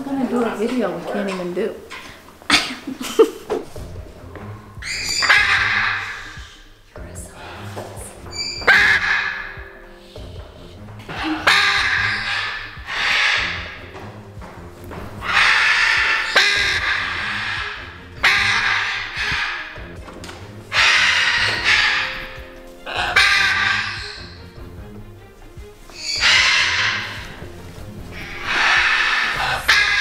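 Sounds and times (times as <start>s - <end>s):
background music: 0.0s - 30.0s
macaw squawking: 4.5s - 25.0s, 25.9s - 30.0s.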